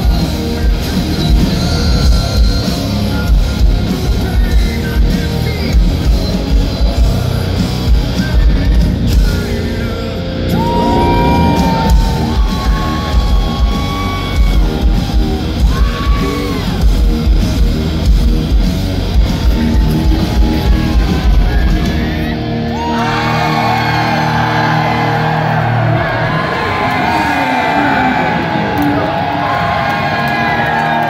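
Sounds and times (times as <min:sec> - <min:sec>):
bass and drums: 0:00.0 - 0:27.2
concert crowd cheering and whooping: 0:00.0 - 0:31.0
distorted electric guitar riff: 0:00.0 - 0:31.0.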